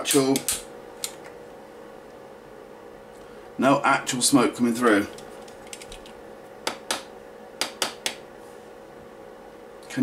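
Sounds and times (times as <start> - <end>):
small fan humming: 0.0 - 10.0.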